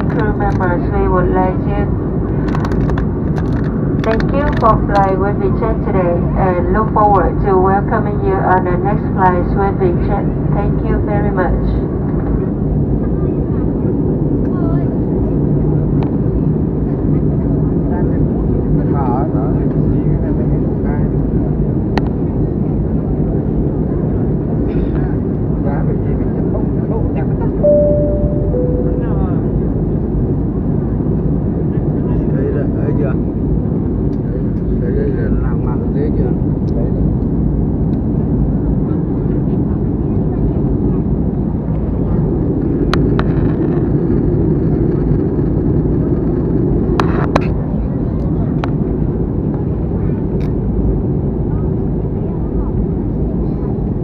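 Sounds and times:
airliner cabin rumble: 0:00.0 - 0:54.0
two-note cabin chime: 0:27.6 - 0:29.6.

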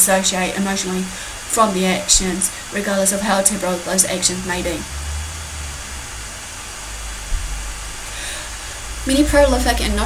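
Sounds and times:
even hiss: 0:00.0 - 0:10.0
steady low rumble: 0:03.1 - 0:10.0.

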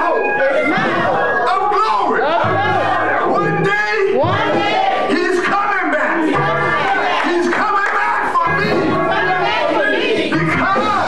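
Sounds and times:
congregation calling out: 0:00.0 - 0:11.0
preacher's raised voice: 0:00.0 - 0:11.0.

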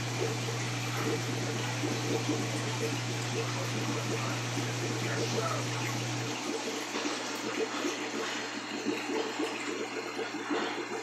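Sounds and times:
low steady hum: 0:00.0 - 0:10.9
aquarium air stone bubbling: 0:00.0 - 0:11.0.

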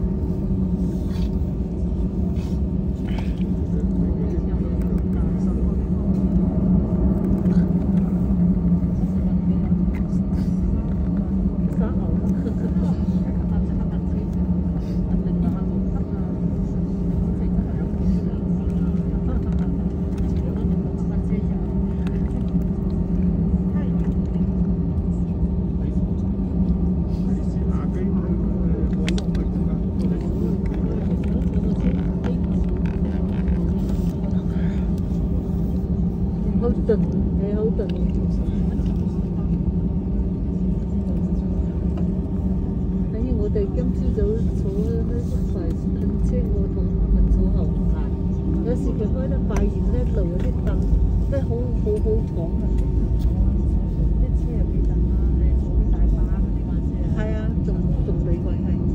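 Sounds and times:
jet engine drone in cabin: 0:00.0 - 0:58.9.

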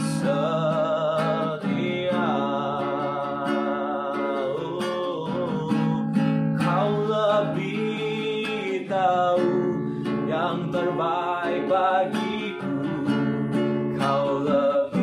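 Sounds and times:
man singing with vibrato: 0:00.0 - 0:15.0
strummed acoustic guitar: 0:00.0 - 0:15.0.

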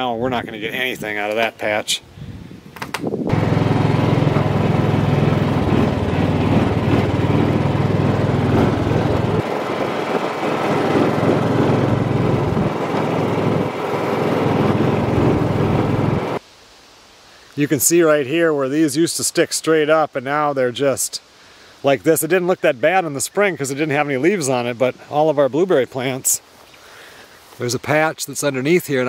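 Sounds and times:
small vehicle engine running: 0:03.3 - 0:16.4.

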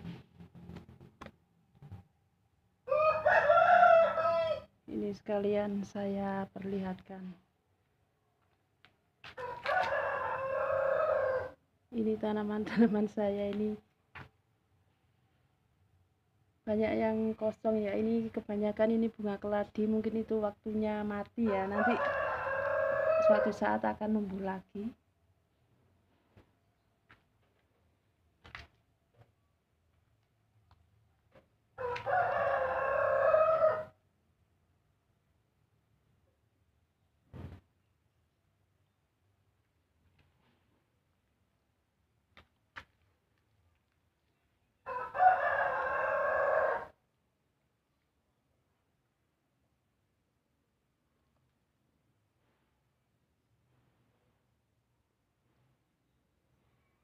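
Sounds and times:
rooster crowing: 0:02.8 - 0:04.7, 0:09.4 - 0:11.6, 0:21.5 - 0:23.6, 0:31.8 - 0:34.0, 0:44.9 - 0:47.0.

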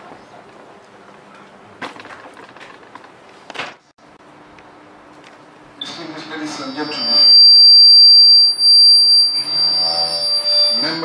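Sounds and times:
microphone feedback squeal: 0:05.8 - 0:11.0
man's voice: 0:09.4 - 0:11.0.

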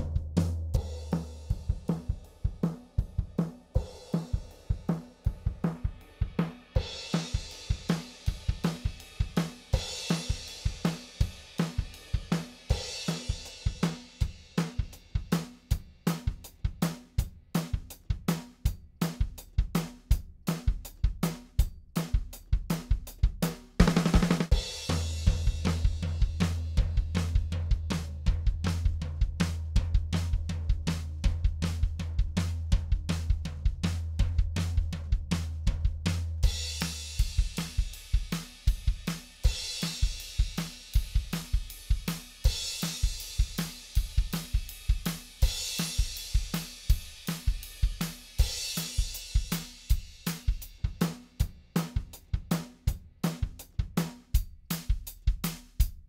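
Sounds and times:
drum kit groove: 0:00.0 - 0:56.0.

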